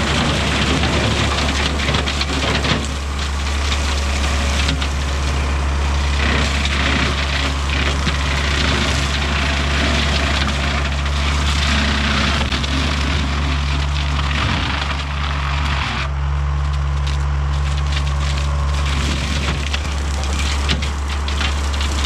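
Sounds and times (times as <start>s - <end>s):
brush cutter crackling branches: 0.0s - 22.0s
tractor diesel engine: 0.0s - 22.0s.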